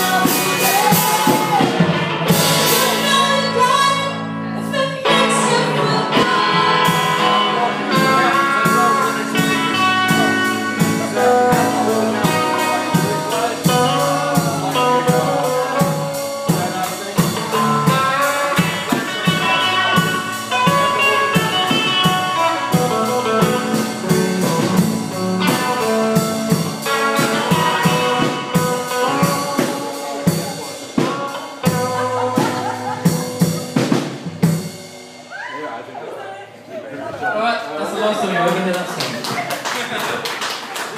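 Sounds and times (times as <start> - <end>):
blues-rock band playing: 0.0 - 35.6
hard drum hits: 8.0 - 35.2.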